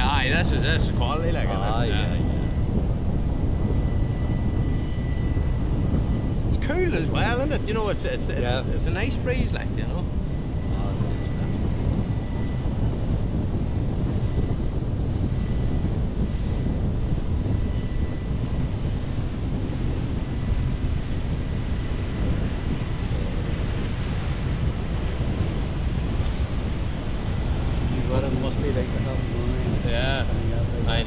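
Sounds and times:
wind rushing over microphone: 0.0 - 31.0.

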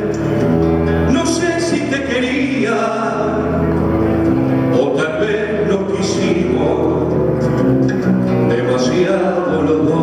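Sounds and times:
man singing folk ballad: 0.0 - 3.8, 4.6 - 7.6, 8.3 - 10.0.

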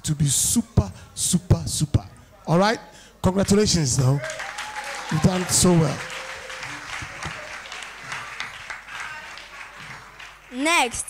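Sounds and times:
audience applauding: 3.4 - 11.0.

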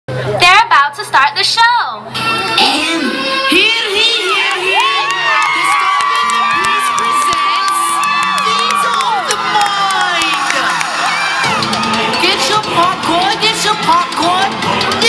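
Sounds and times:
crowd cheering and screaming: 3.6 - 15.0
hand claps: 4.5 - 11.0.

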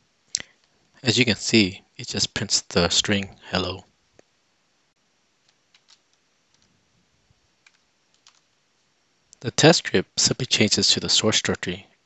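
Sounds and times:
faint keyboard keystrokes: 5.4 - 6.8, 7.6 - 8.5.

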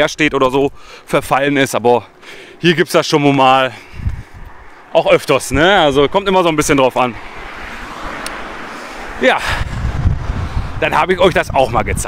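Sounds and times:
van driving past: 4.8 - 10.8
car driving past: 5.6 - 10.8.

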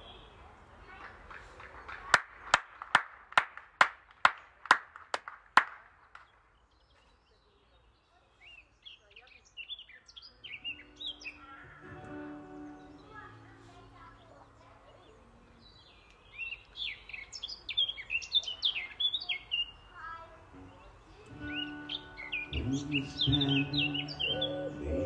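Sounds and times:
songbird chirping: 0.0 - 2.4, 5.8 - 25.0
held musical notes: 20.5 - 25.0.

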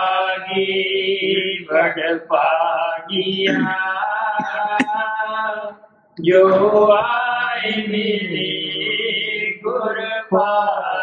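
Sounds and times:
person chanting a hymn: 0.0 - 11.0.

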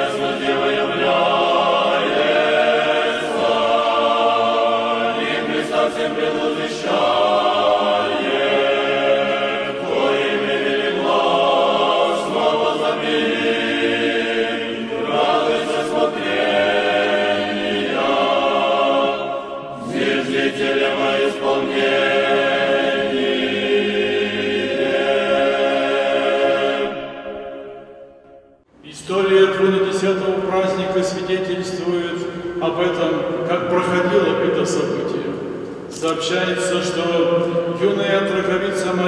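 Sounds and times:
church choir singing a cappella: 0.0 - 39.0.

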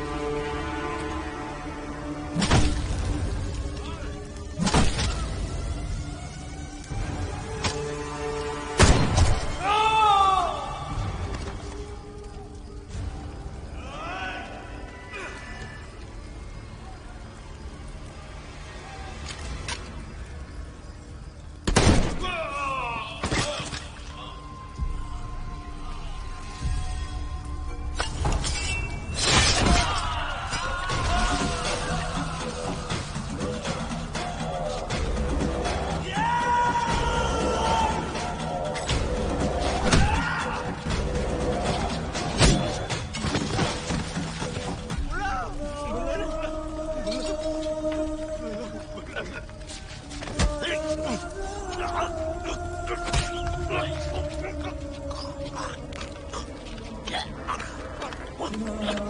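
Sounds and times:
dramatic background music: 0.0 - 59.0.

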